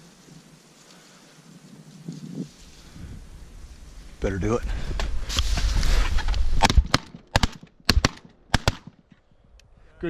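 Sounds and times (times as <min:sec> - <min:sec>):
shotgun shots: 0:06.6 - 0:09.0.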